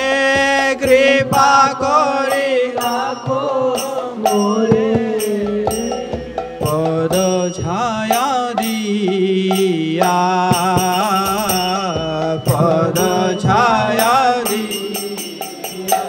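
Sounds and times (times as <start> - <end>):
hand cymbals ringing: 0.0 - 16.0
hand drum: 0.0 - 16.0
man singing devotional song: 0.0 - 16.0.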